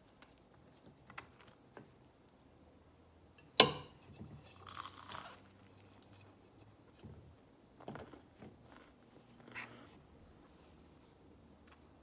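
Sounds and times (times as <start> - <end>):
crunch of biting into toast: 4.6 - 5.7.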